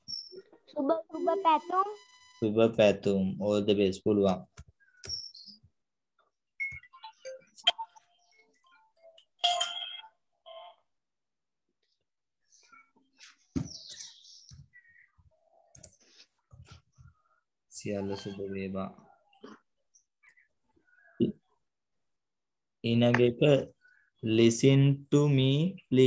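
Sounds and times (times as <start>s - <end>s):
keyboard and mouse clicks: 15.7s - 16.0s.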